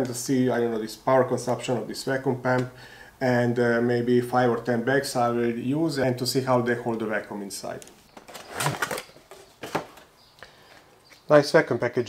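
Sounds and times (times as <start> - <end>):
plastic bag rustling: 8.1 - 10.1.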